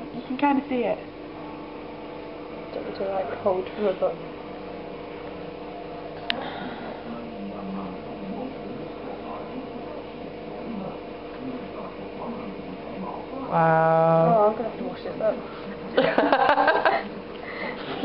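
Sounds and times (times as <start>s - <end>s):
electrical hum: 0.0s - 18.0s
low murmuring voices: 4.2s - 18.0s.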